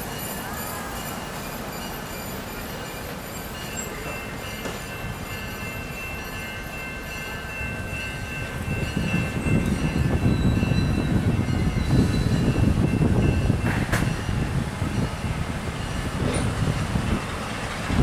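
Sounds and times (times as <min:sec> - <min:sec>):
train wheels rumbling on rails: 0:00.0 - 0:18.0.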